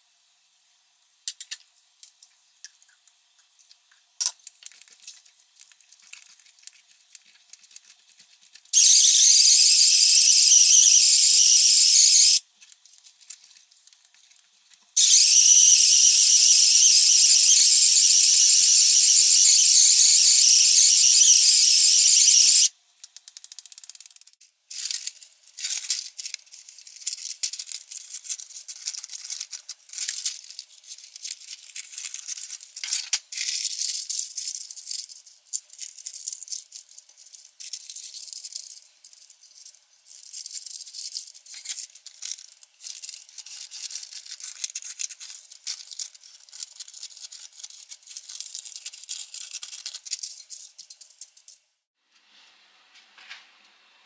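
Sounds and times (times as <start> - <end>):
paper crinkling: 4.4 - 8.8, 12.6 - 14.9, 24.7 - 38.7, 40.6 - 51.3.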